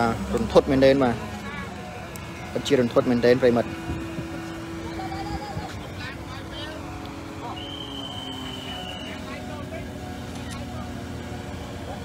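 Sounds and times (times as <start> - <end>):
faint street voices: 0.0 - 12.0
vehicle engine running: 0.0 - 12.0.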